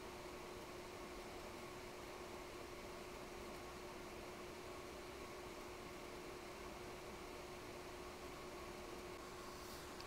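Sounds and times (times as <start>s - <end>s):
faint steady hiss: 0.0s - 10.0s
faint steady hum: 0.0s - 10.0s.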